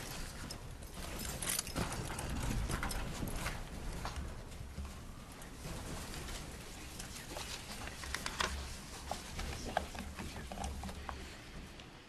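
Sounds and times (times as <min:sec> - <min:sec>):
chairs knocking and shuffling: 0:01.1 - 0:06.8.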